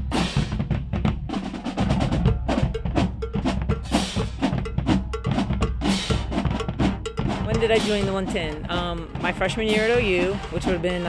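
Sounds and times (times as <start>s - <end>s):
bass drum: 0.0s - 11.0s
snare drums: 0.0s - 11.0s
pitched percussion hit: 2.0s - 11.0s.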